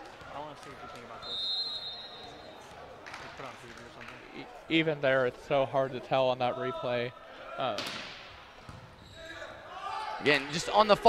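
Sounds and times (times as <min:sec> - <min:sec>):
echoing voices in a hall: 0:00.0 - 0:11.0
high whistle: 0:01.2 - 0:02.4.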